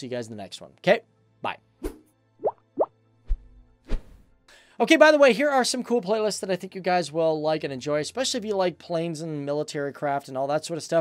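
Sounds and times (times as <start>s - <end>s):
rising pop sound effects: 1.8s - 3.4s.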